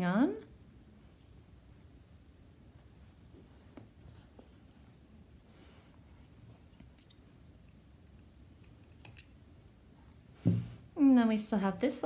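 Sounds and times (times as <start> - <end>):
soft yarn rustle: 0.4 - 8.6.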